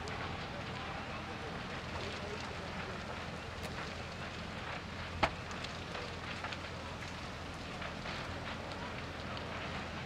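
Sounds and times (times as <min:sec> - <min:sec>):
fire crackling and popping: 0:00.0 - 0:10.0.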